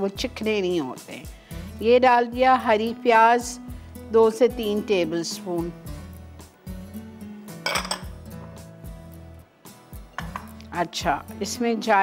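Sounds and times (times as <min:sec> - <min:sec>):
soft background music: 0:00.0 - 0:12.0
glass bowls clinking and scraping: 0:07.6 - 0:08.2.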